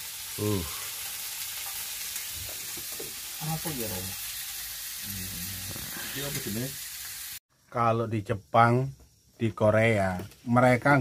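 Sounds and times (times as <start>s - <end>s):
meat sizzling on grill pan: 0.0s - 7.4s.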